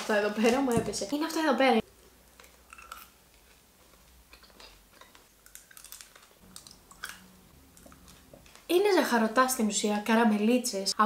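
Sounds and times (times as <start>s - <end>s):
chewing candy: 1.8s - 8.6s.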